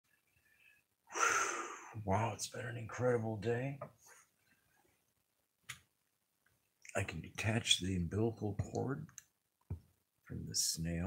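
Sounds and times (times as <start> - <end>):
man sighing: 1.1 - 2.0.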